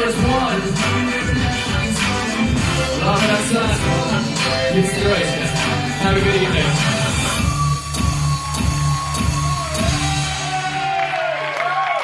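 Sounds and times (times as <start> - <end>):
hip-hop backing beat: 0.0 - 10.7.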